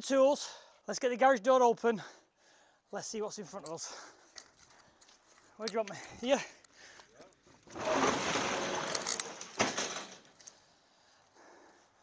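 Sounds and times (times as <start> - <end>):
metal roller shutter rolling up: 7.7 - 10.3.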